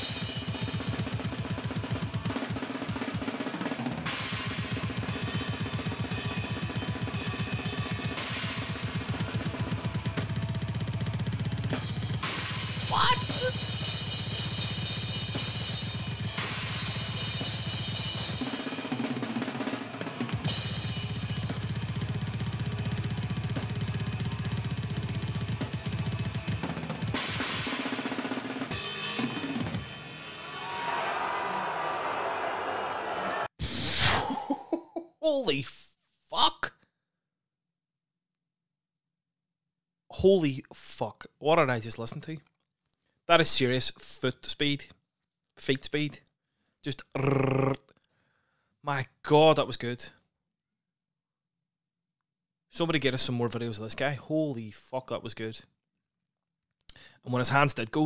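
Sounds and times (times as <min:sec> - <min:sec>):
snare and cymbals: 0:00.0 - 0:10.5, 0:11.4 - 0:31.4
loud high-pitched sound: 0:12.9 - 0:13.6.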